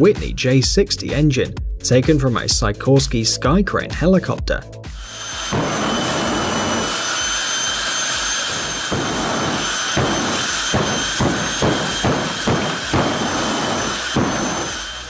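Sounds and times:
jet engine roaring with whine: 4.9 - 15.0.

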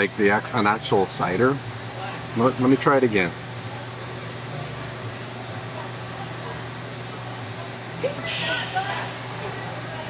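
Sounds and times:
constant low hum: 0.0 - 10.0
faint distant voices: 0.0 - 10.0.

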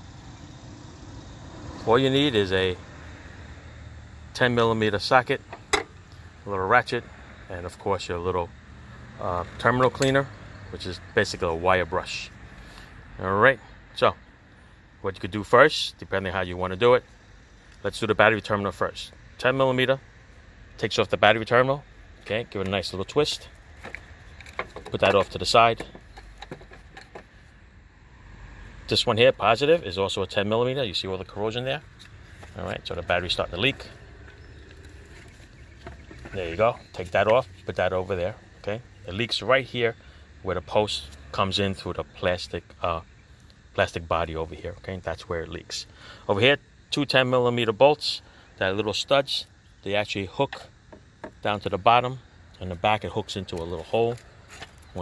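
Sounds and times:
steady low rumble: 0.0 - 45.6
handling clicks and knocks: 5.5 - 6.0, 23.8 - 27.4, 34.3 - 37.4.

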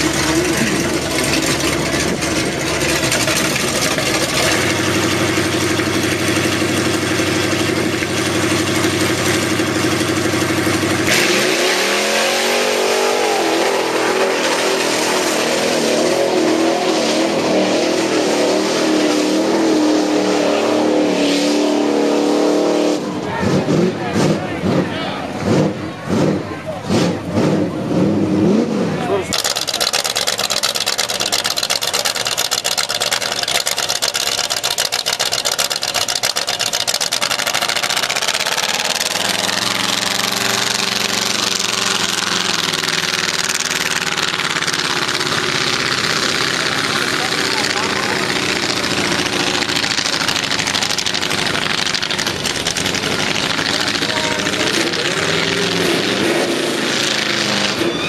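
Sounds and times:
truck engine idling: 0.0 - 11.1, 23.0 - 58.0
truck engine revving: 0.0 - 58.0.

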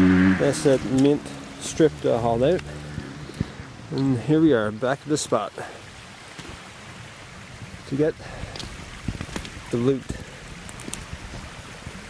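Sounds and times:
wind buffeting microphone: 0.0 - 4.6, 5.9 - 12.0.

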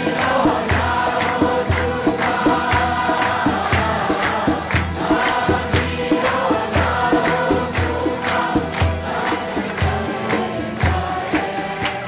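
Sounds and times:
group singing: 0.0 - 12.0
hands clapping in time: 0.0 - 12.0
jingling percussion: 0.0 - 12.0.

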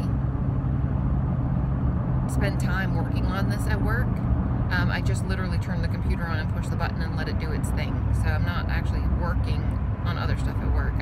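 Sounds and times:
car engine drone: 0.0 - 11.0
road noise inside car: 0.0 - 11.0.

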